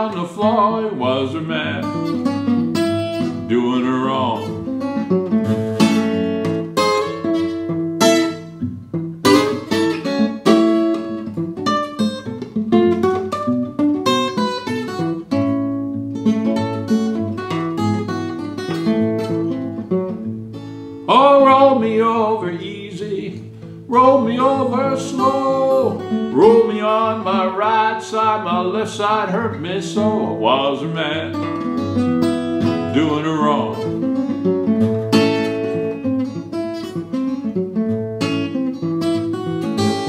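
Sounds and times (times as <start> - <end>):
fingerpicked acoustic guitar: 0.0 - 40.0.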